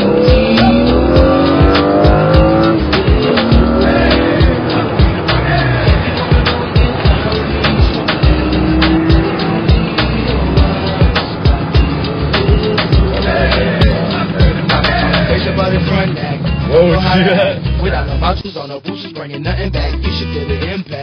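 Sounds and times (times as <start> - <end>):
car engine accelerating hard: 0.0 - 18.3
hip-hop music with steady beat: 0.0 - 21.0.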